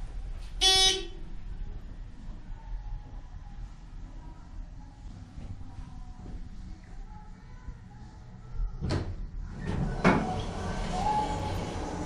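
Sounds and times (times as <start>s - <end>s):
elevator doors sliding open: 8.9s - 12.0s.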